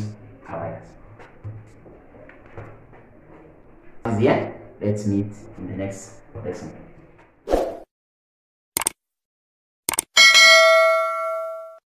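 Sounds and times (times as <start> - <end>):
bell ding: 10.2 - 11.8.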